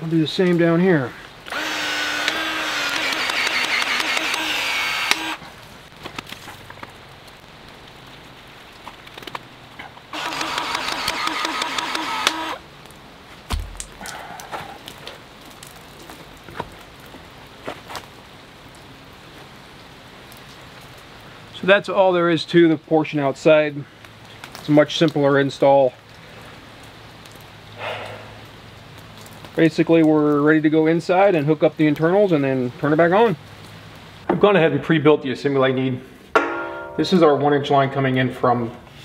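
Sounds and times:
expansion tool motor whine: 0:01.5 - 0:05.4, 0:10.1 - 0:12.6.

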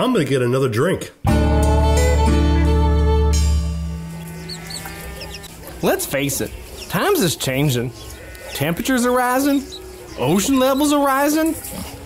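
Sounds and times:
bird chirps: 0:04.1 - 0:11.2.

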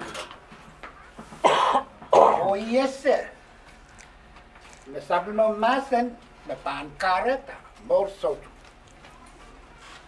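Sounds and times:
man coughing: 0:01.4 - 0:02.6.

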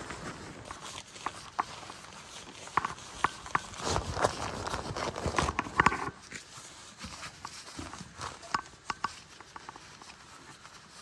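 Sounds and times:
synthetic fabric rustling and crinkling: 0:00.0 - 0:11.0.

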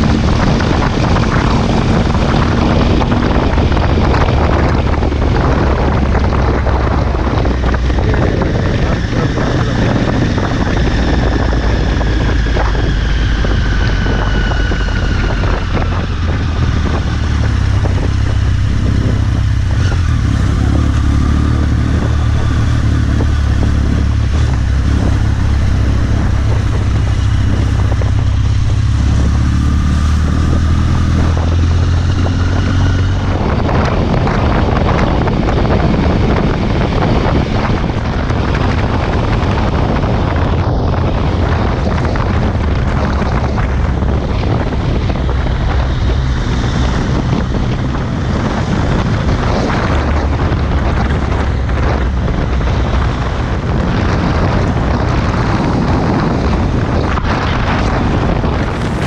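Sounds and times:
motorcycle engine running: 0:00.0 - 0:59.0
wind noise on microphone: 0:00.0 - 0:59.0.

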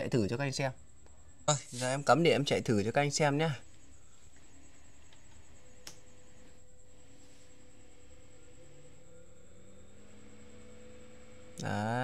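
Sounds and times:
fan humming spinning up: 0:00.0 - 0:12.0.

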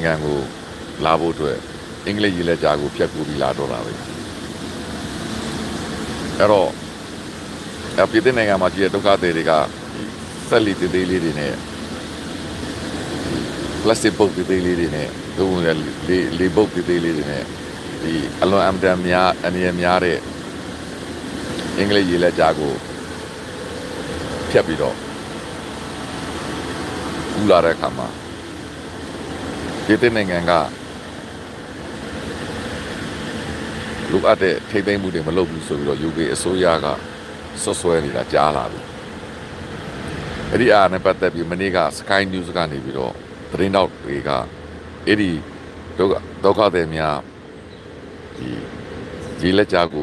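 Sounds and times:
man speaking: 0:00.0 - 0:04.0, 0:06.4 - 0:06.8, 0:07.9 - 0:11.6, 0:13.2 - 0:20.2, 0:21.6 - 0:22.8, 0:24.4 - 0:25.0, 0:27.4 - 0:28.2, 0:29.8 - 0:30.8, 0:34.0 - 0:37.0, 0:37.6 - 0:38.9, 0:40.5 - 0:45.4, 0:46.0 - 0:47.2, 0:48.4 - 0:48.8, 0:49.4 - 0:50.0
steady background hum: 0:00.0 - 0:50.0
steady background noise: 0:00.0 - 0:50.0.

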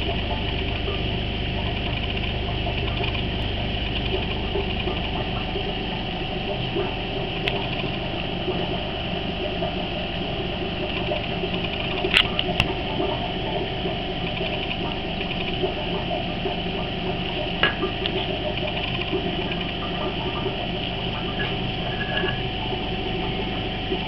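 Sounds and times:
aquarium air pump humming: 0:00.0 - 0:24.0.

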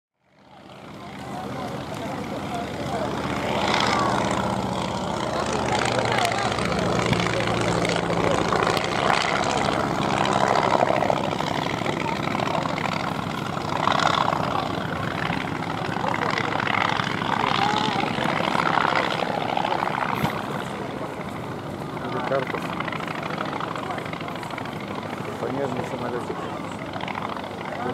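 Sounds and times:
biplane engine in flight: 0:00.2 - 0:27.9
people's voices: 0:00.4 - 0:27.9.

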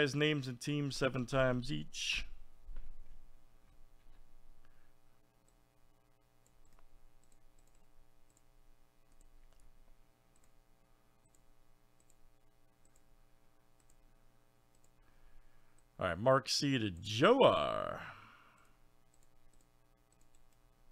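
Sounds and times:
faint computer mouse clicks: 0:06.4 - 0:08.5, 0:09.1 - 0:09.7, 0:10.3 - 0:10.6, 0:11.2 - 0:12.2, 0:12.8 - 0:13.1, 0:13.8 - 0:14.0, 0:14.7 - 0:15.0, 0:18.6 - 0:20.6.

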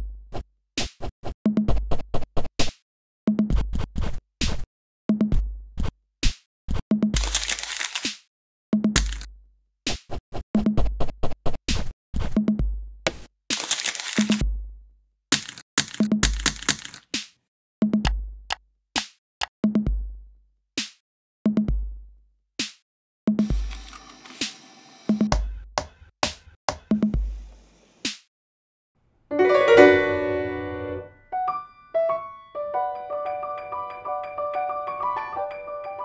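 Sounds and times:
crumpling paper beat: 0:07.2 - 0:08.2, 0:09.0 - 0:09.3, 0:13.1 - 0:14.4, 0:15.3 - 0:17.1, 0:23.4 - 0:24.1
grand piano chord: 0:29.3 - 0:34.0
piano melody: 0:29.3 - 0:36.0.

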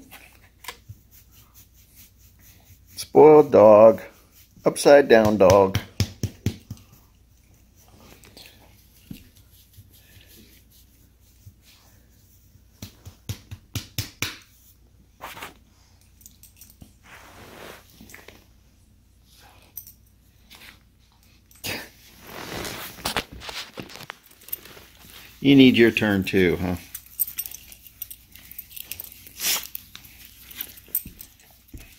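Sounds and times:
dogs play-wrestling on carpet: 0:06.6 - 0:13.3, 0:14.6 - 0:25.5, 0:26.6 - 0:31.9.

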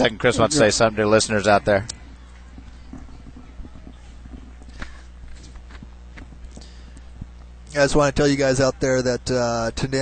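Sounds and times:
distant crowd murmur: 0:00.0 - 0:09.3
low electrical hum: 0:00.0 - 0:10.0.

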